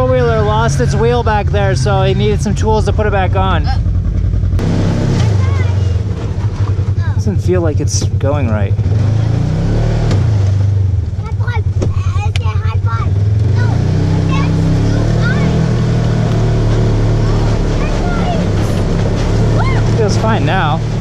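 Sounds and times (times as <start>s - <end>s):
off-road vehicle engine running: 0.0s - 21.0s.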